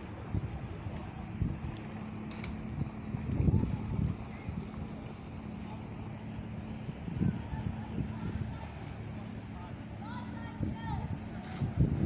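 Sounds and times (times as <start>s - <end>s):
wind buffeting microphone: 0.0s - 8.9s, 10.1s - 12.0s.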